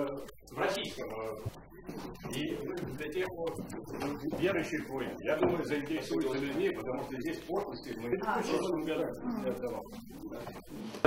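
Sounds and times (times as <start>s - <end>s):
low voices murmuring: 0.0s - 11.0s.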